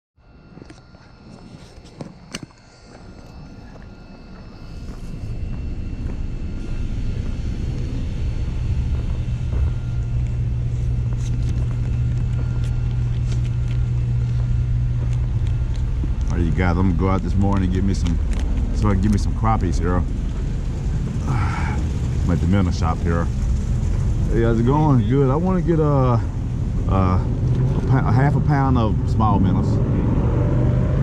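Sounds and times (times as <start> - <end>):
low mechanical hum: 0.2 - 31.0
footsteps on gravel: 0.5 - 24.6.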